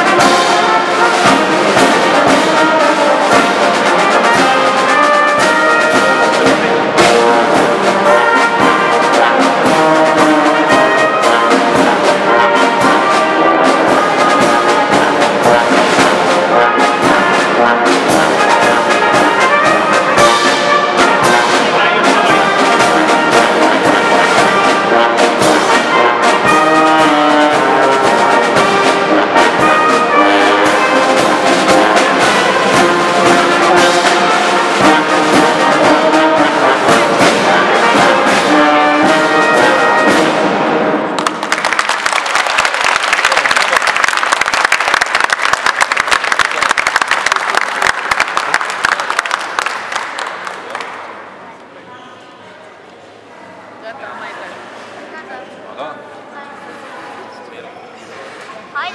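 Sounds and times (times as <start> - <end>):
brass band playing a march: 0.0 - 51.2
audience applause: 41.2 - 51.3.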